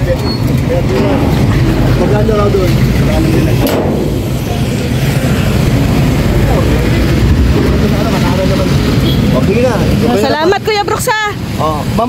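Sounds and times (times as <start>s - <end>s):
road and wind noise: 0.0s - 12.0s.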